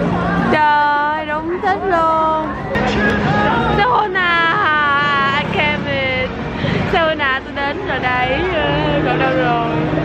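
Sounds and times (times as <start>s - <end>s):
busy city street noise: 0.0s - 10.0s
vehicle engine hum: 0.0s - 10.0s
people talking: 3.7s - 9.8s.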